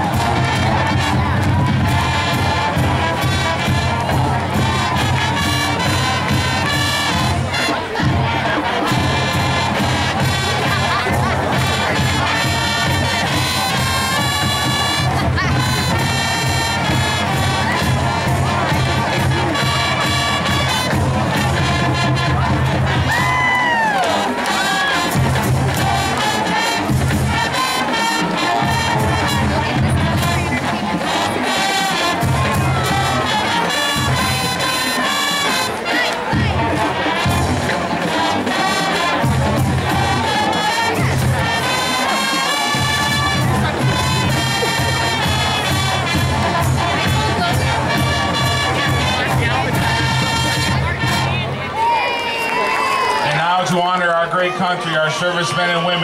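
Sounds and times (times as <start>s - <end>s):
steady drum beat: 0.0s - 51.9s
crowd cheering and shouting: 0.0s - 56.0s
marching band playing: 0.0s - 56.0s.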